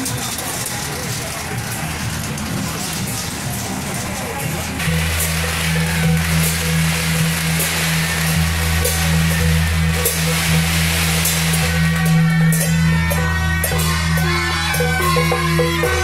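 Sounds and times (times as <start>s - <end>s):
hand cymbals: 0.0s - 16.0s
gong struck: 4.8s - 16.0s.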